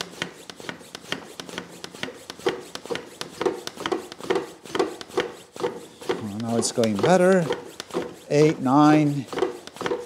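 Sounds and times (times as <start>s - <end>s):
hand pump strokes with clicks: 0.0s - 10.0s.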